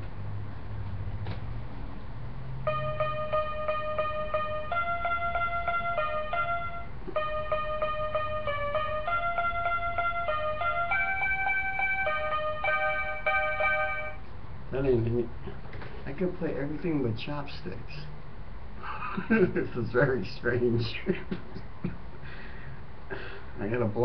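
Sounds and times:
toy keyboard playing a tune: 0:02.7 - 0:14.2.

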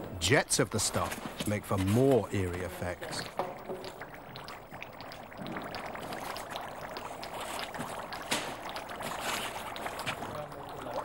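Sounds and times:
paste bubbling and gurgling: 0:00.3 - 0:11.0.

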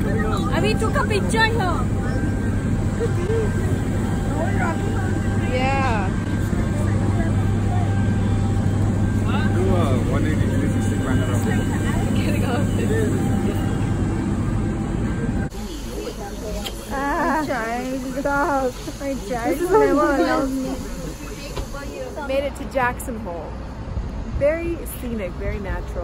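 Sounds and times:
jet aircraft drone: 0:00.0 - 0:22.4
people's voices: 0:00.0 - 0:23.6.

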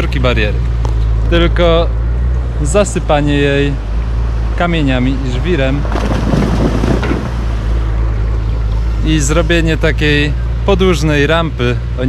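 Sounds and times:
excavator engine drone: 0:00.0 - 0:12.0.

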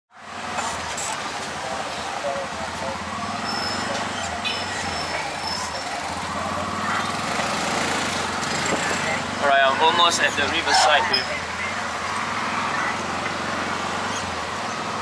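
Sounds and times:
auto rickshaw engine running: 0:00.1 - 0:15.0.

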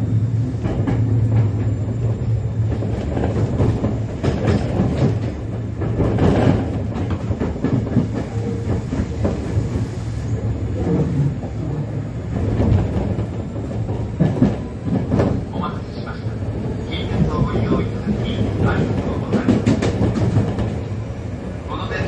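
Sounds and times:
wheels clacking over rail joints: 0:00.6 - 0:09.7, 0:12.3 - 0:20.9.

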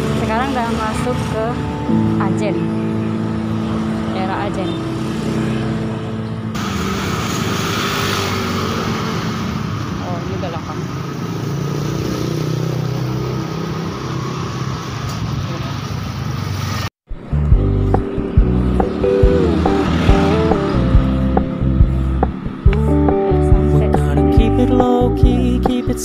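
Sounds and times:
motorcycle engines passing: 0:00.0 - 0:24.1
steady rush of road noise: 0:00.0 - 0:25.8.

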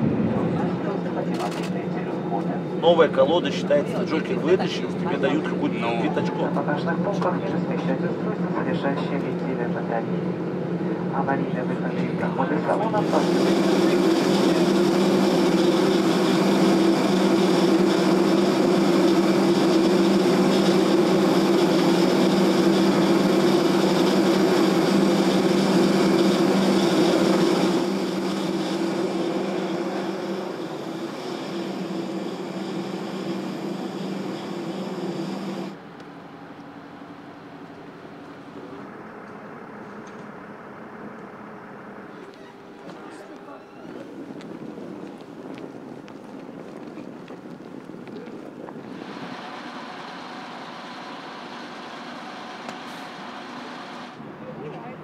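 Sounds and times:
jet turbine hum and whine: 0:00.0 - 0:55.0
outdoor background: 0:00.0 - 0:55.0.

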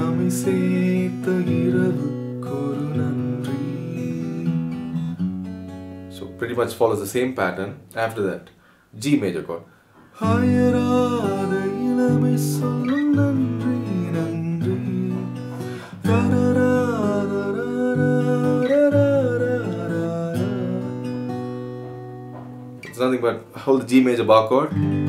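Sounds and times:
man singing: 0:00.0 - 0:04.8, 0:10.2 - 0:21.3
acoustic guitar chords: 0:00.0 - 0:08.5, 0:09.6 - 0:25.0.

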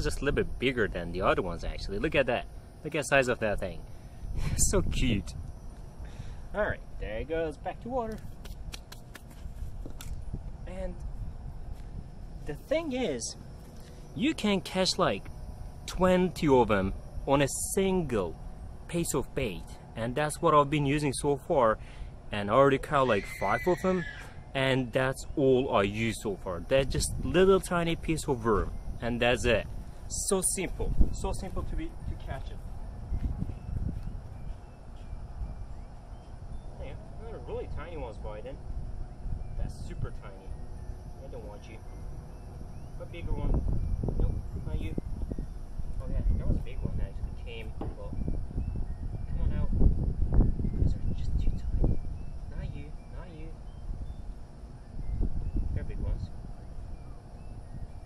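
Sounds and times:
distant birds chirping: 0:00.0 - 0:58.0
wind rumble on microphone: 0:03.6 - 0:13.1, 0:25.9 - 0:58.0
hands rubbing and slapping: 0:08.1 - 0:10.2.

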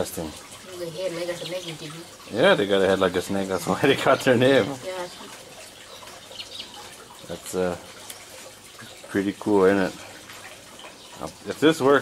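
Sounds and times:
water trickling in fish tank: 0:00.0 - 0:12.0.

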